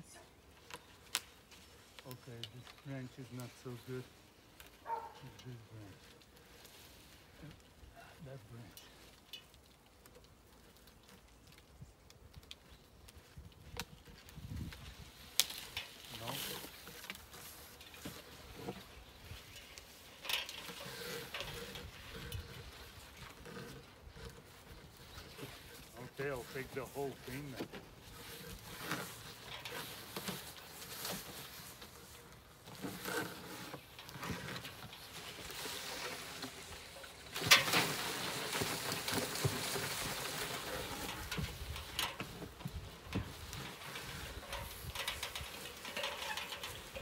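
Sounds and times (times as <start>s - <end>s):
conifer branches rustling: 0.0s - 47.0s.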